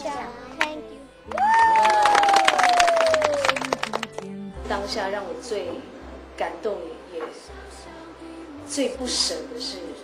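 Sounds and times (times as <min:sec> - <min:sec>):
crowd clapping: 0:00.6 - 0:04.3.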